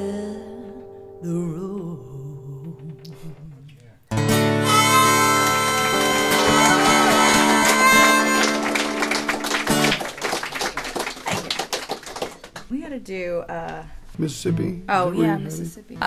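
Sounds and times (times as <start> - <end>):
audience applause: 5.3 - 12.7.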